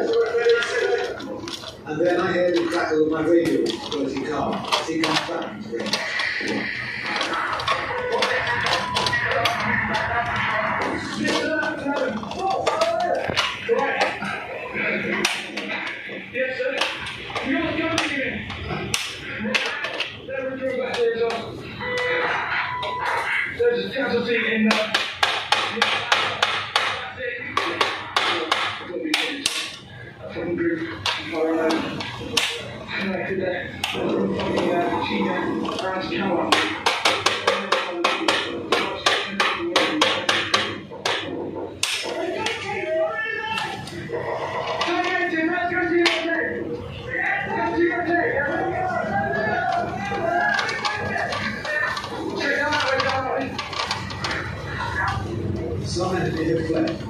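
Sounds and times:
man talking: 0.0 - 21.8, 23.1 - 57.0
clicks of circuit breakers: 15.1 - 23.3, 24.7 - 29.9, 31.0 - 32.7, 35.6 - 42.7.

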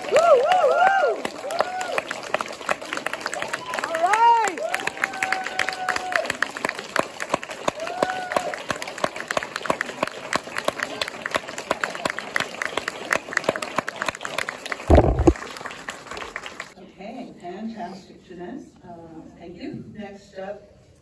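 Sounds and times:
audience applauding: 0.0 - 16.8
loud low thump: 14.9 - 15.4.

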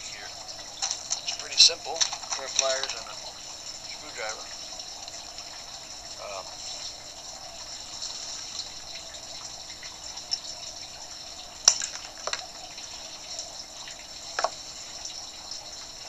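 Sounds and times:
steady background hiss: 0.0 - 16.0.

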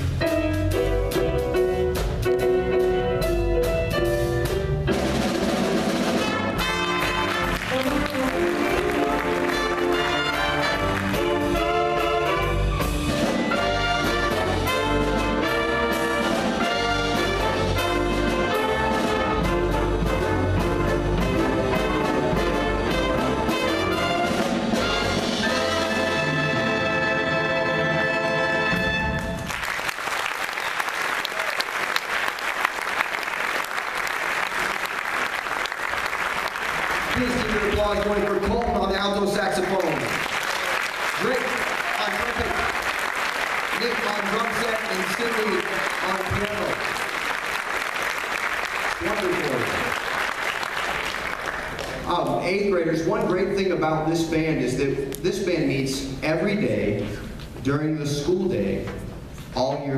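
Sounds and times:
jazz big band playing swing: 0.0 - 29.8, 31.3 - 57.3
audience applauding: 6.6 - 12.6, 29.2 - 52.4.

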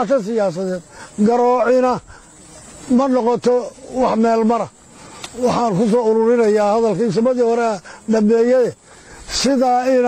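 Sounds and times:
man speaking: 0.0 - 2.1, 2.9 - 4.8, 5.4 - 10.0
soft hiss: 0.0 - 10.0.

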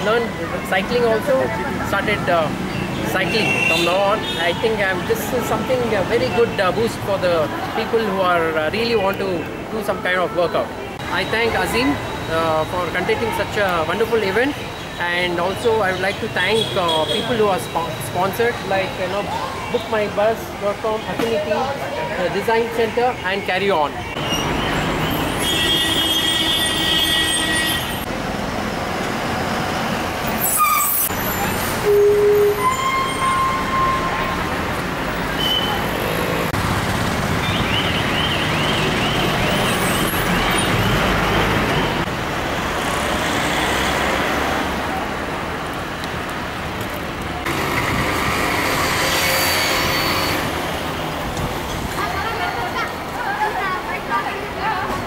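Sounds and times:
road traffic: 0.0 - 55.0
vehicle horns: 24.2 - 28.1, 30.4 - 34.4, 35.3 - 35.9, 48.6 - 50.7.

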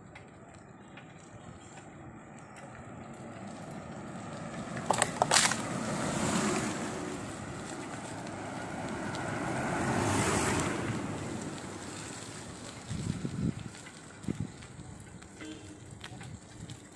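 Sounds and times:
wind rushing over microphone: 5.0 - 16.9.

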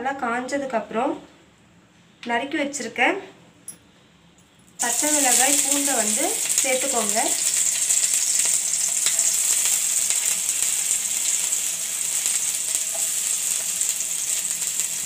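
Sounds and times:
garlic sizzling in hot oil: 4.8 - 15.0.

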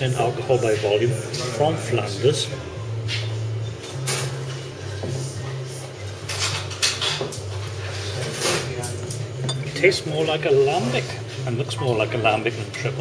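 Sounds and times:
glasses and crockery clinking: 9.4 - 10.0.

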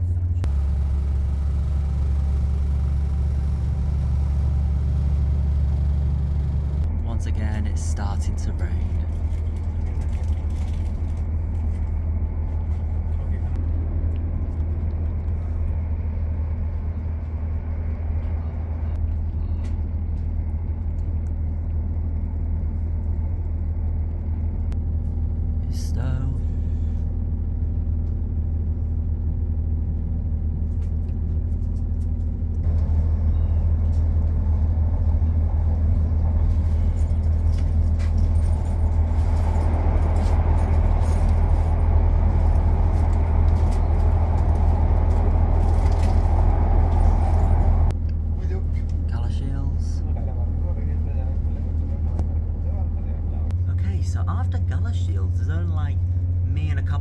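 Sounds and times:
wheels on the track: 0.0 - 49.1
diesel train engine rumble: 0.0 - 57.0.

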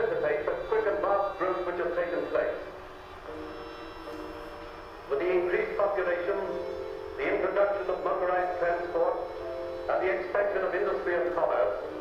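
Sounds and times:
ensemble playing held notes: 0.0 - 12.0.

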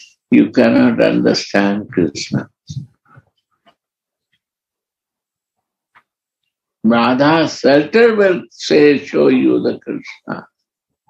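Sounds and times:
man speaking over video call: 0.0 - 3.2, 6.8 - 10.7.

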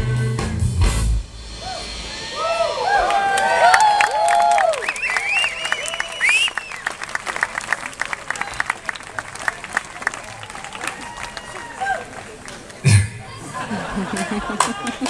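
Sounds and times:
audience applauding: 2.9 - 15.0
whistles: 4.5 - 7.0.

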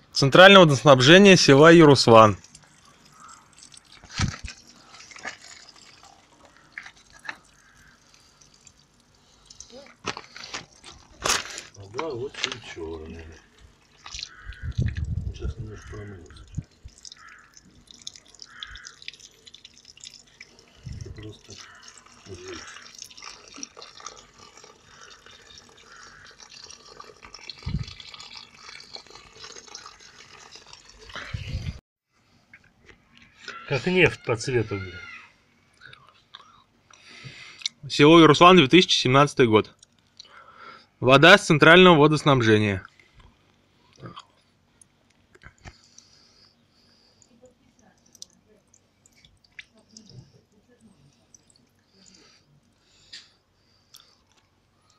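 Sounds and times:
water trickling and dripping: 1.9 - 11.0, 12.9 - 31.3, 47.1 - 52.7.

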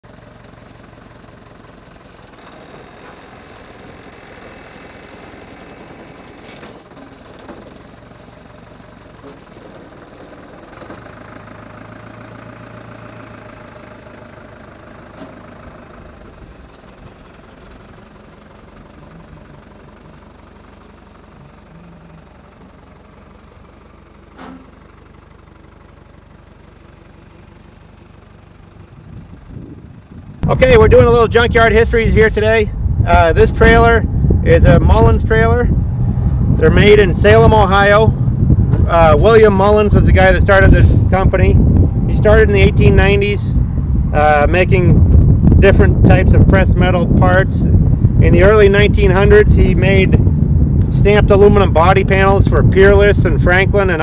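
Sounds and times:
forklift engine running: 0.0 - 54.0
clank: 2.3 - 7.9, 24.3 - 25.0.

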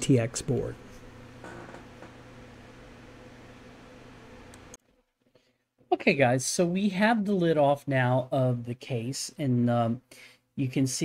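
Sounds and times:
steady low hum: 0.0 - 4.8.

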